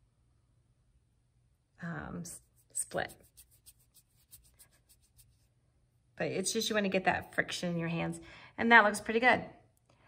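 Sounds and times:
palms rubbing on damp yarn: 1.8 - 7.6.

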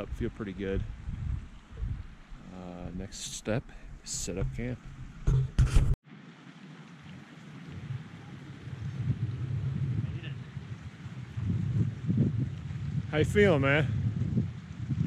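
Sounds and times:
wind buffeting microphone: 0.0 - 6.0, 7.5 - 15.0.

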